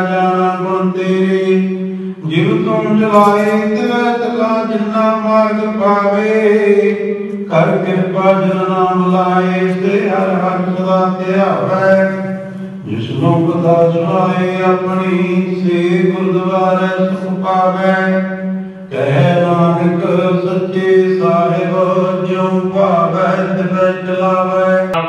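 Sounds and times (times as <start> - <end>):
devotional hymns sung: 0.0 - 25.0
low drone accompaniment: 0.0 - 25.0.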